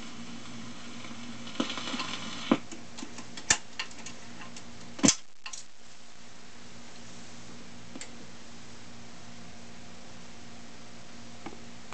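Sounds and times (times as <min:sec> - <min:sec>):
low steady hum: 0:00.0 - 0:11.9
record surface hiss: 0:00.0 - 0:11.9.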